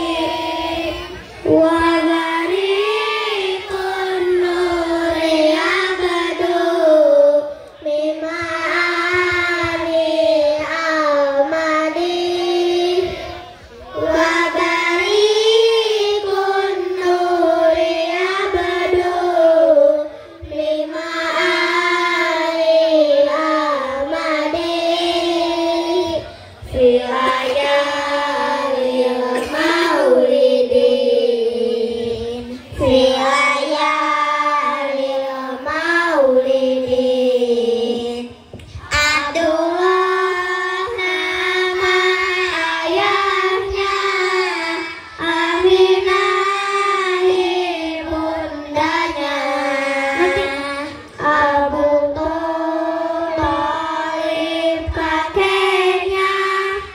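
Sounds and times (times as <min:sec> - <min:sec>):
children singing together: 0:00.0 - 0:56.9.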